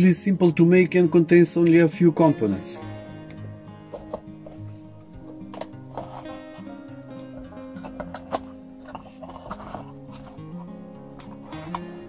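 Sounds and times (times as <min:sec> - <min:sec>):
background music of held notes: 0:00.0 - 0:12.0.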